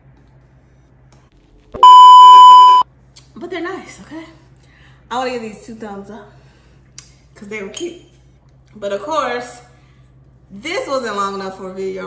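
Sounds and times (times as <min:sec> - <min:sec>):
censor bleep: 0:01.8 - 0:02.8.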